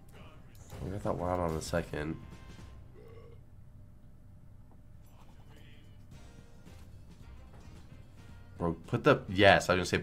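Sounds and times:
quiet game background music: 0.0s - 10.0s.

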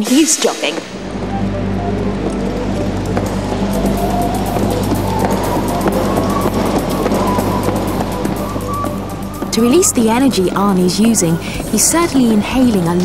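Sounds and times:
background music: 0.0s - 13.0s
treadmill motor hum: 0.8s - 13.0s
hooves clicking on belt: 3.1s - 12.0s.

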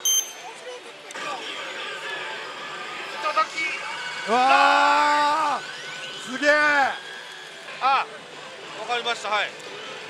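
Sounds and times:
short bright ring: 0.0s - 0.6s
slot machine sound effects: 0.0s - 0.6s.

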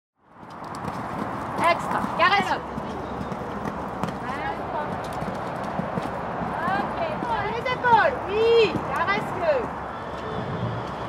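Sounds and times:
horse hoofbeats on sand: 0.4s - 9.7s
people talking: 1.6s - 2.6s, 4.2s - 5.0s, 6.6s - 9.7s.

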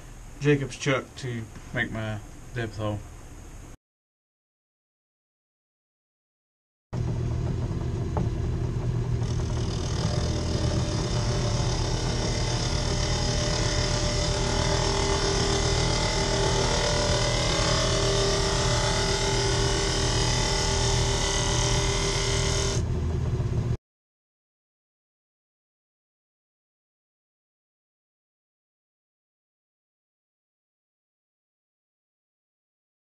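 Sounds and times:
wood lathe motor hum: 7.0s - 23.4s
hand tool cutting wood: 9.2s - 22.8s.

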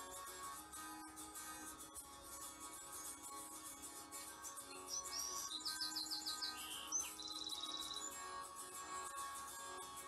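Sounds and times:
quiet guitar music: 0.0s - 10.0s
songbird singing: 4.5s - 9.2s.

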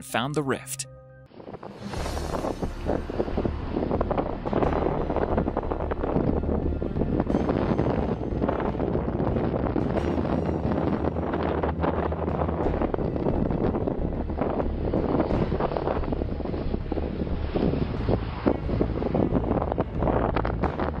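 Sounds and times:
wind buffeting microphone: 1.3s - 21.0s.

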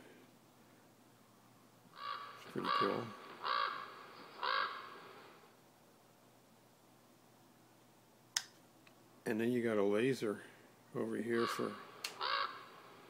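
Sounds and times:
crow cawing: 2.0s - 5.0s, 11.3s - 12.8s
sharp click: 8.4s - 9.0s.

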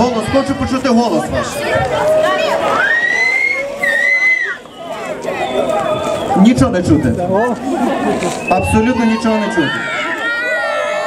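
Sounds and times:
person whistling high notes: 2.8s - 4.8s.

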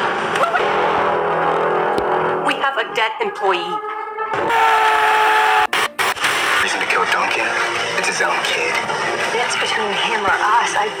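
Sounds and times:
loud rushing noise: 0.0s - 2.5s
man screaming: 4.4s - 5.7s.

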